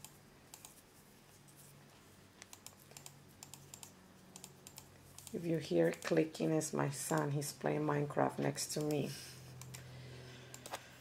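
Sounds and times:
computer keyboard and mouse clicking: 0.0 - 0.8, 2.4 - 6.2, 9.6 - 9.8, 10.5 - 10.8
faint low room hum: 0.0 - 11.0.

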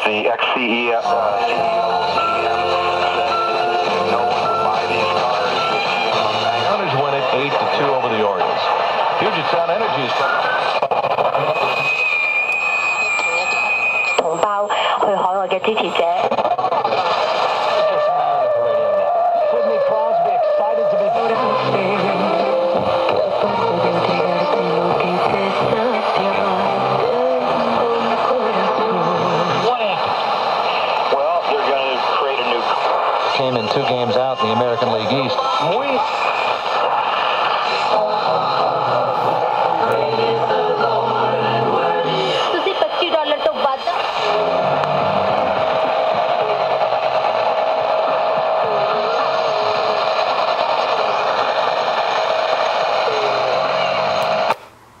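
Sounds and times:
faint radio speech and music: 0.0 - 54.5
radio static: 0.0 - 54.6
steady radio whistle: 0.0 - 54.6
crackling burst: 29.2 - 54.8.

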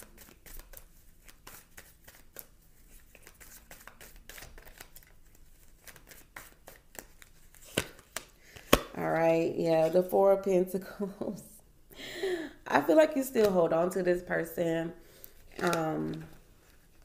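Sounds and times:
cards being shuffled: 0.0 - 9.0, 13.4 - 13.6, 15.1 - 17.0.

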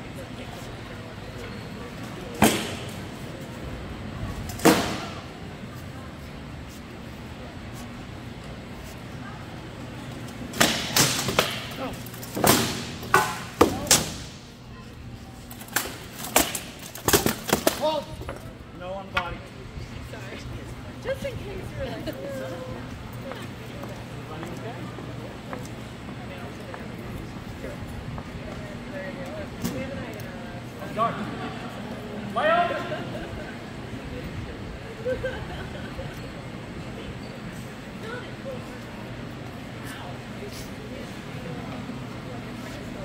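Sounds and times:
murmur of voices: 0.0 - 43.0.

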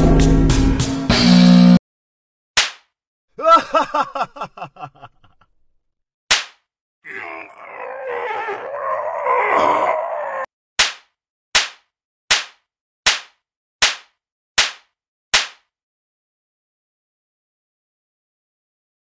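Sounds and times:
sharp smack: 2.6 - 2.9, 6.3 - 6.7, 10.8 - 15.7
harsh distorted scream: 7.1 - 10.5.

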